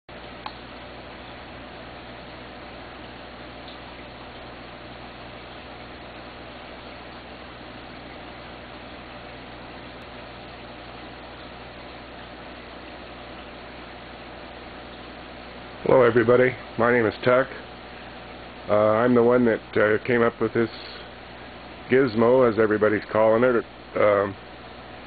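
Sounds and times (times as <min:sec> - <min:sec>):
aquarium filter bubbling: 0:00.1 - 0:25.0
low steady hum: 0:00.1 - 0:25.0.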